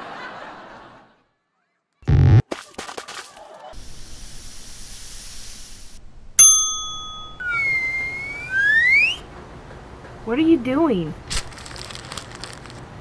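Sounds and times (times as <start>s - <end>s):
faint hiss: 3.8s - 6.2s
bell-like ding: 6.4s - 7.5s
sliding whistle-like tone: 7.4s - 9.3s.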